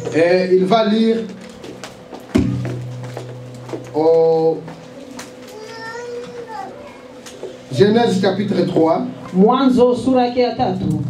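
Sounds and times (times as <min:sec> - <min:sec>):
steady low hum: 0:00.0 - 0:05.6
faint child's voice: 0:05.0 - 0:07.3.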